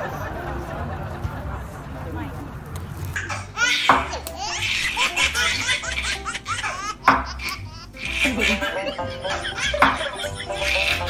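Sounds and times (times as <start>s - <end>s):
baby laughing: 3.2s - 11.0s.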